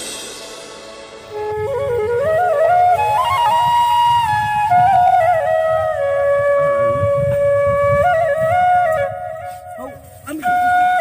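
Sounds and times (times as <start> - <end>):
flute holding a long note: 1.0 - 11.0.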